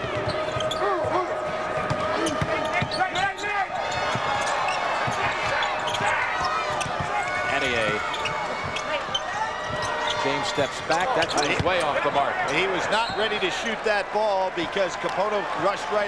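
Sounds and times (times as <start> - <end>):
basketball dribbling: 0.0 - 3.0, 3.9 - 9.9
sneakers squeaking: 0.0 - 13.4
arena noise: 0.0 - 16.0.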